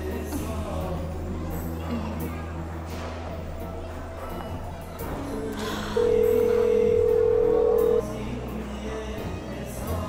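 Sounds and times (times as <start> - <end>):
phone call tone beep: 6.0 - 8.0.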